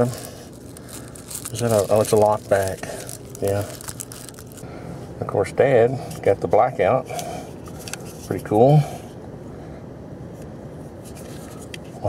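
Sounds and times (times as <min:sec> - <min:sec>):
plastic wrapping crinkling: 0:00.0 - 0:04.6.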